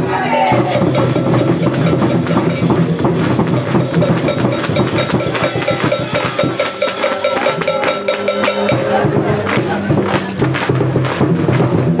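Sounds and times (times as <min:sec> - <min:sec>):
steady tones: 0:00.0 - 0:10.4
rhythmic clapping or stomping: 0:00.1 - 0:12.0.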